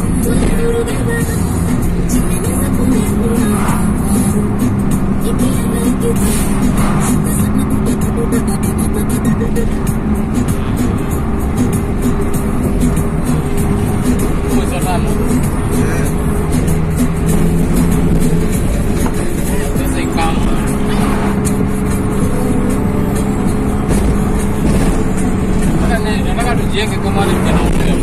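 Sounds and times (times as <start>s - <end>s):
engine and road noise: 0.0s - 28.0s
music in car cabin: 0.0s - 28.0s.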